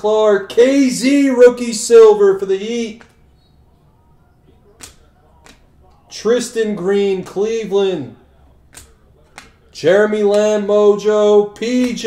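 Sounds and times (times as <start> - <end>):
faint hum: 0.0 - 12.0
trading card snapping: 2.9 - 3.2, 4.7 - 6.0, 8.7 - 9.7, 11.6 - 12.0.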